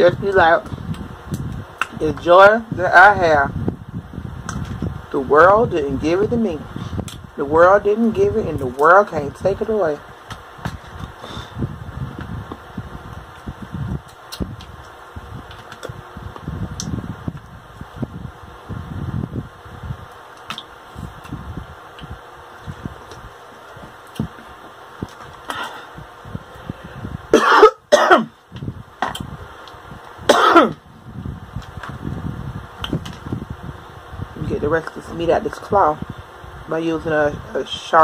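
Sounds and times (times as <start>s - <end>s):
throat-clearing coughs: 27.4s - 28.3s, 30.3s - 30.8s.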